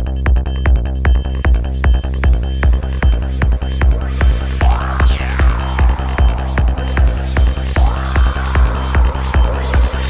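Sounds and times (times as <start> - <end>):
kick drum beat: 0.0 - 10.0
rolling synth bassline: 0.0 - 10.0.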